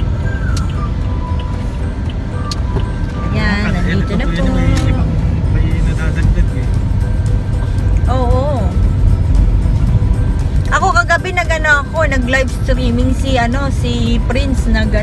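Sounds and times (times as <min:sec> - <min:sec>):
car road and engine rumble: 0:00.0 - 0:15.0
music playing: 0:00.0 - 0:15.0.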